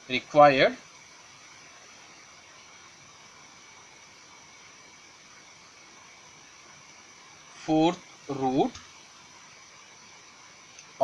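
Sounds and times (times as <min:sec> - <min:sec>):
faint recording hiss: 0:00.0 - 0:11.0
thin high steady whine: 0:00.0 - 0:11.0.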